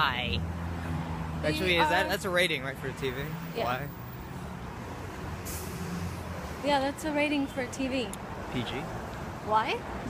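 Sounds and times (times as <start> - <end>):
road traffic rumbling: 0.0 - 10.0.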